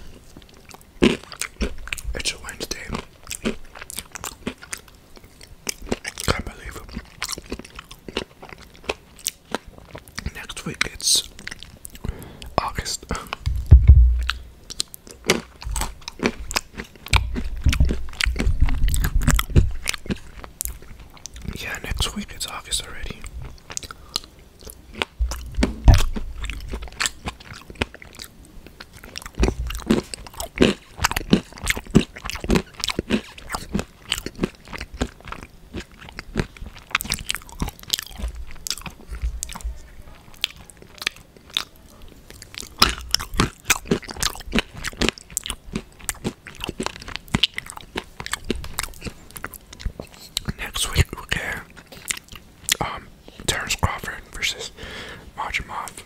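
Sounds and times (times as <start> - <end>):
food crunching while chewed: 0.0 - 54.6
wet mouth clicks: 10.2 - 22.0.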